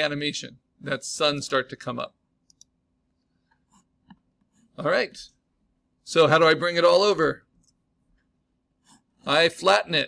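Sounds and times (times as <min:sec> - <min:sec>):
computer mouse clicks: 0:02.4 - 0:02.8
soft clicks: 0:02.4 - 0:02.8.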